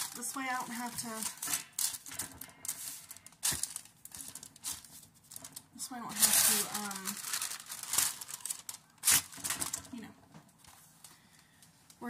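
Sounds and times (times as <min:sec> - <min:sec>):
paper crinkling: 0:00.0 - 0:11.2.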